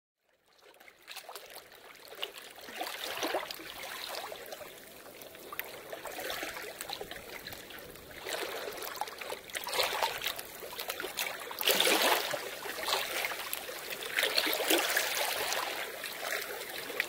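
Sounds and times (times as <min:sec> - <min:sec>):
water trickling: 0:01.2 - 0:17.0.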